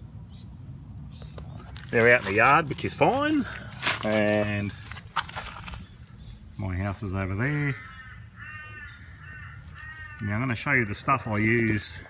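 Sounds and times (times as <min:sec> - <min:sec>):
bird crow-like calls: 0:07.4 - 0:11.8.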